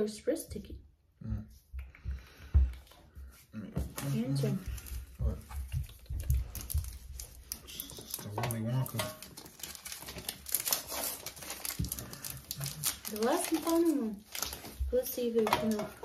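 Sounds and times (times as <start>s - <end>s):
wrappers crinkling: 4.0s - 16.0s.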